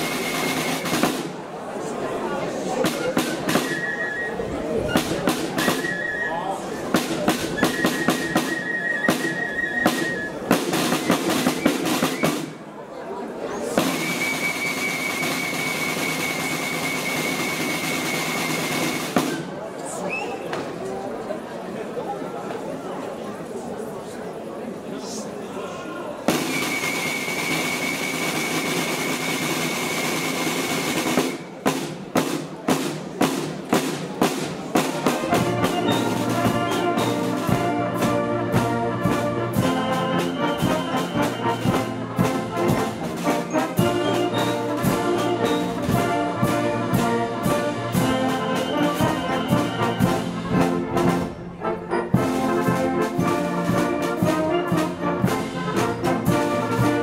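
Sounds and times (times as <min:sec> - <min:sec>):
wind band playing: 0:00.0 - 0:01.4, 0:02.8 - 0:12.6, 0:13.8 - 0:19.6, 0:26.3 - 0:57.0
sustained drum roll: 0:06.9 - 0:12.6, 0:26.3 - 0:51.4
trombones and trumpets chords: 0:35.3 - 0:57.0.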